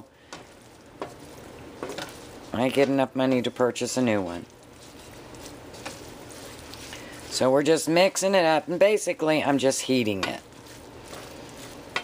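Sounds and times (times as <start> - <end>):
squash sizzling in oil: 0.0 - 12.0
wooden spoon scraping pot: 0.3 - 8.1, 10.1 - 12.0.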